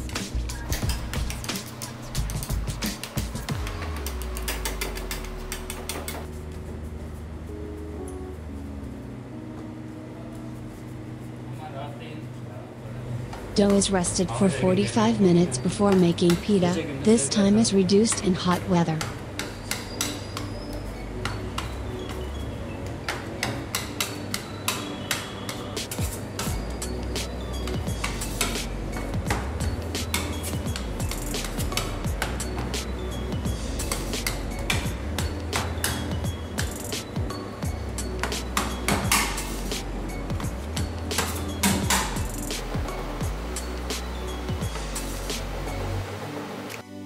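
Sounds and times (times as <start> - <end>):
background music with bass line: 0.0 - 8.9, 25.0 - 47.0.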